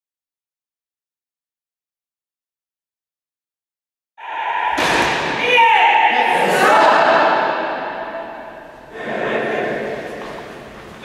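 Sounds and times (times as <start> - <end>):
raised voices echoing in hall: 4.2 - 11.0
sharp thump: 4.6 - 5.6.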